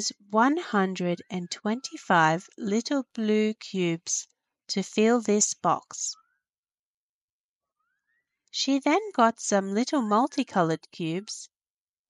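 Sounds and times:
narrator speaking: 0:00.0 - 0:04.2.

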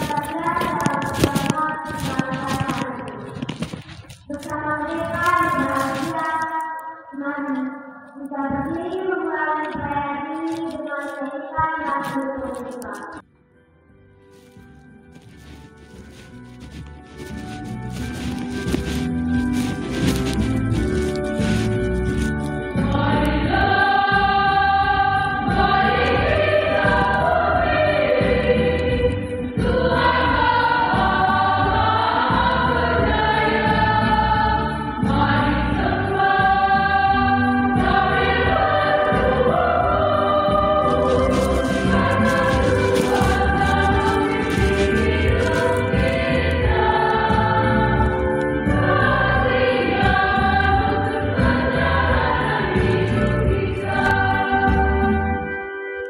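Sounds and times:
electronic keyboard accompaniment: 0:00.0 - 0:56.0
choir singing a hymn: 0:22.8 - 0:55.4.

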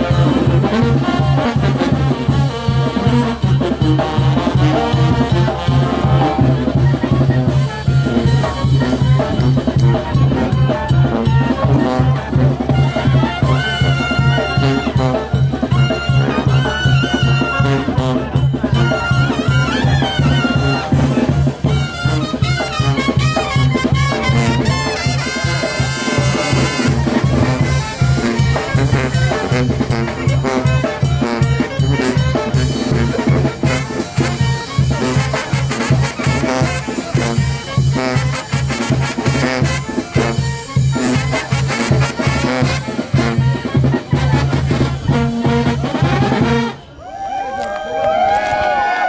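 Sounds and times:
sousaphone bass line: 0:00.0 - 0:46.8
brass band playing dance tune: 0:00.0 - 0:47.3.

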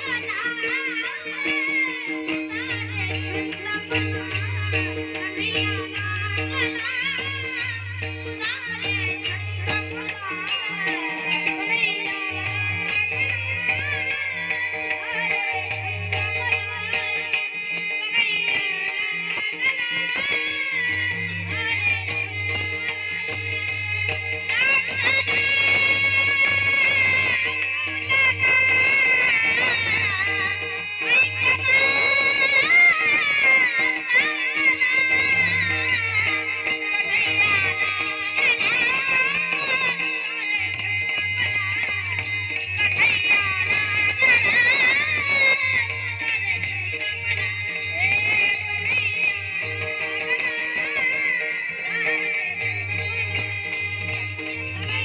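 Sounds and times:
devotional singing into microphone: 0:00.0 - 0:55.0
instrumental accompaniment: 0:00.0 - 0:55.0
percussion strokes: 0:00.0 - 0:55.0.

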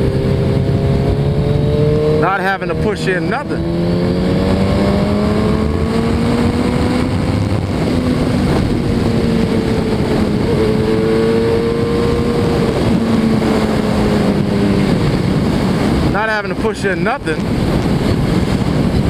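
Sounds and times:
motorcycle engine cruising: 0:00.0 - 0:19.0
wind noise on microphone: 0:00.0 - 0:19.0.

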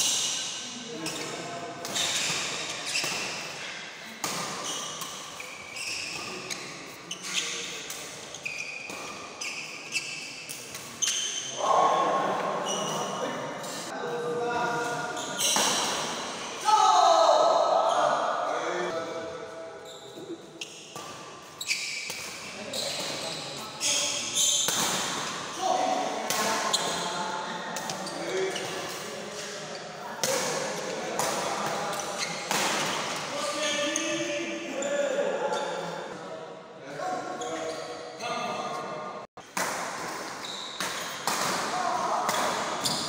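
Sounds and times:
shoes squeaking on floor: 0:00.0 - 0:03.7, 0:04.3 - 0:11.6, 0:12.5 - 0:13.9, 0:14.8 - 0:16.4, 0:19.8 - 0:25.0, 0:31.9 - 0:34.9, 0:37.3 - 0:38.8, 0:40.2 - 0:41.4, 0:42.7 - 0:43.0
people calling out: 0:16.4 - 0:19.0
rackets hitting shuttlecock: 0:24.6 - 0:25.5, 0:39.5 - 0:43.0.

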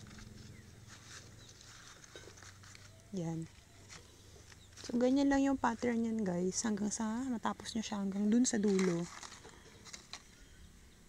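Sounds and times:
leaf strips rustling and scratching: 0:00.0 - 0:10.4.

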